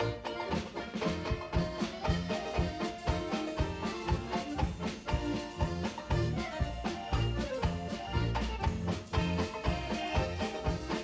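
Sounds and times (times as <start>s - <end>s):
polka with accordions and banjo: 0.0s - 11.0s.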